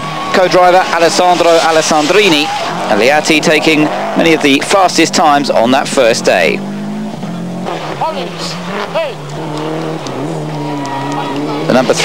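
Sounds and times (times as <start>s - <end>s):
car engine at high revs: 0.0s - 12.0s.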